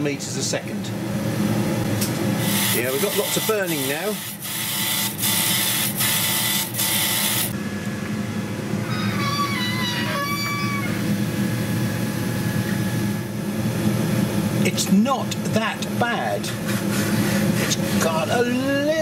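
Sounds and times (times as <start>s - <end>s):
machine hum: 0.0s - 19.0s
laser cutter hiss: 2.4s - 7.6s.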